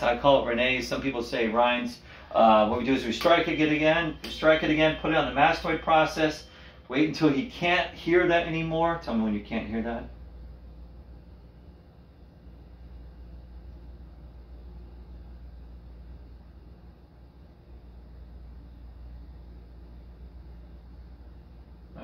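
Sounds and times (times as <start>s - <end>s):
low room hum: 0.0s - 22.0s
tuning fork ringing: 2.6s - 8.9s.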